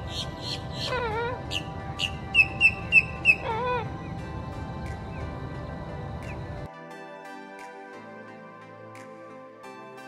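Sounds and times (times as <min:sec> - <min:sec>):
woodpecker calling: 0:00.0 - 0:03.9
background music: 0:00.0 - 0:10.0.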